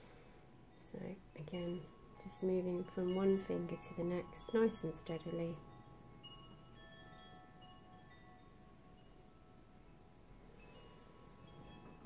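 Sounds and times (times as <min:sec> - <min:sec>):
held chime tones: 0:00.7 - 0:12.0.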